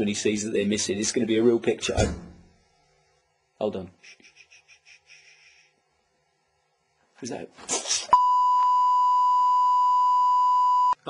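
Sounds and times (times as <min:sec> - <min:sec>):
electronic test tone: 0:08.2 - 0:11.0.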